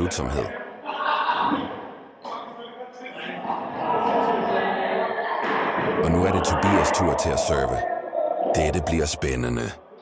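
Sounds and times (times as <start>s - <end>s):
mix of voices: 0.0s - 10.0s.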